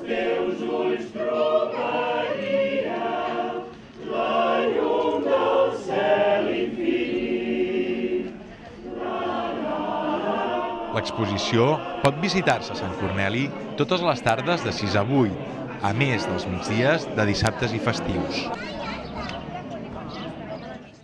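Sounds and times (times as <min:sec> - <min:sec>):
mixed choir singing unaccompanied: 0:00.0 - 0:20.9.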